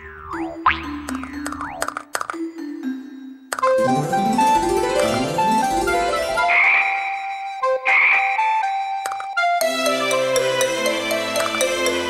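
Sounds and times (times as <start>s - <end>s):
cartoon frog croaks: 0.0s - 2.1s, 6.4s - 7.2s, 7.8s - 8.6s
bright children's music: 0.0s - 12.0s.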